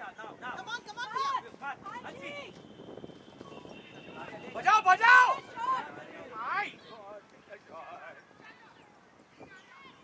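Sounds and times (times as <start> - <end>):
distant shouts and calls: 0.0 - 10.0.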